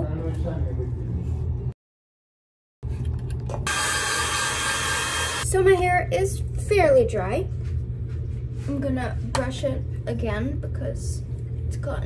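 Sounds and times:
hair dryer running: 0:03.7 - 0:05.5.

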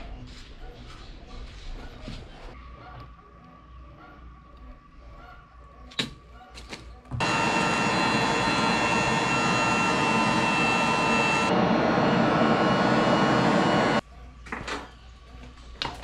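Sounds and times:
electric air blower rushing whine: 0:07.2 - 0:14.0.

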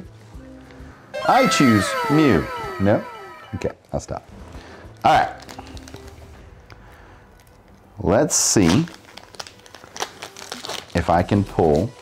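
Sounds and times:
foil wrapper crinkling: 0:05.3 - 0:06.3, 0:08.4 - 0:12.0.

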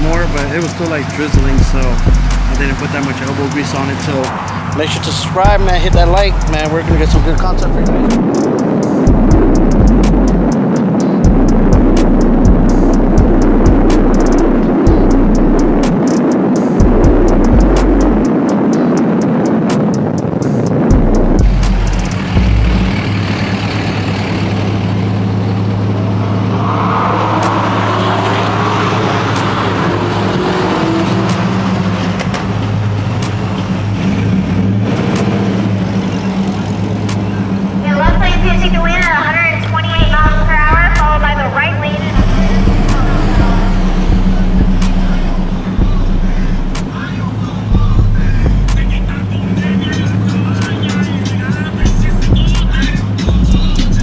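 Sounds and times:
person speaking: 0:00.0 - 0:08.2, 0:37.8 - 0:46.6
low engine drone: 0:00.0 - 0:54.0
music with heavy bass: 0:00.0 - 0:54.0
road noise: 0:00.0 - 0:54.0.

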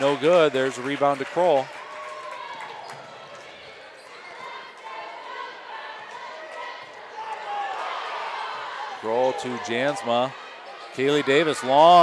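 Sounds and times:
crowd chatter and calls: 0:00.0 - 0:12.0.

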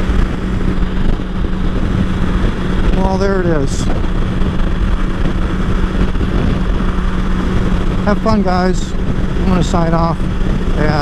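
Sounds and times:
motorcycle engine cruising: 0:00.0 - 0:11.0
wind rush on microphone: 0:00.0 - 0:11.0.

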